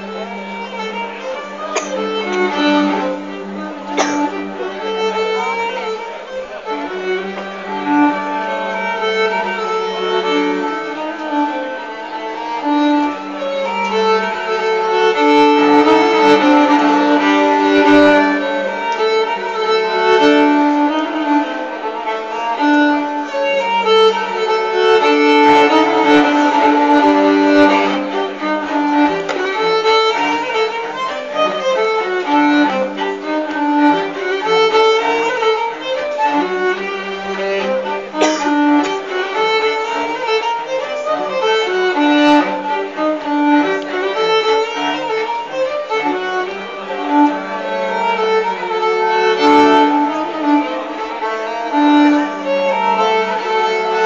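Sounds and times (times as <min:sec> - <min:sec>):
bowed fiddle melody: 0:00.0 - 0:54.0.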